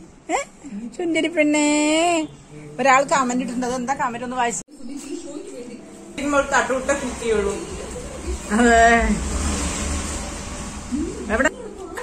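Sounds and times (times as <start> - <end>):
low rumble: 6.7 - 11.5.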